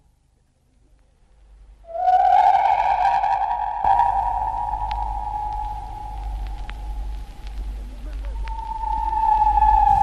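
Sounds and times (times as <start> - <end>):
faint crackles: 0.0 - 10.0
low rumbling noise: 0.0 - 10.0
eerie synthesized tone: 1.8 - 10.0.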